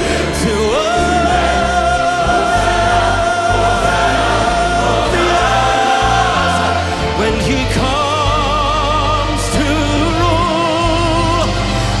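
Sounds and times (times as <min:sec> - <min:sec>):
choir and orchestra performing: 0:00.0 - 0:12.0
steady bass: 0:00.0 - 0:12.0.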